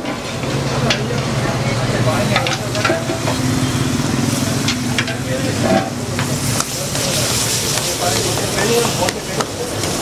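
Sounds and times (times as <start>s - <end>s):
food sizzling in a frying pan: 0.0s - 10.0s.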